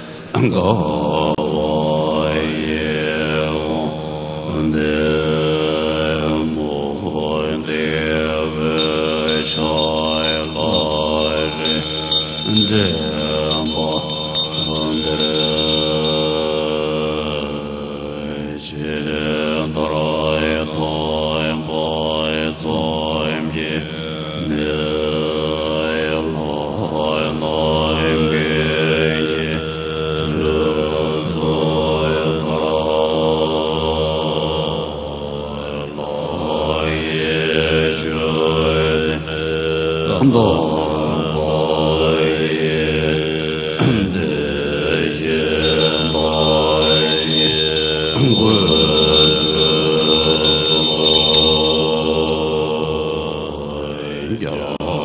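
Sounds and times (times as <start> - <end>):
monks chanting in unison: 0.0 - 55.0
hand bell ringing: 8.8 - 16.9, 45.6 - 52.6.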